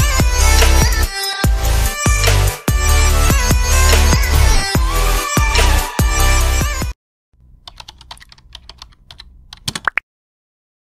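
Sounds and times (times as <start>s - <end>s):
keyboard key clicks: 7.6s - 10.0s.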